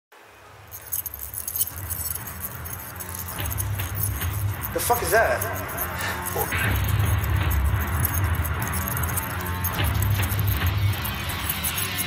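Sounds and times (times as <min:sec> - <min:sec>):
jangling high-pitched clinks: 0:00.7 - 0:12.0.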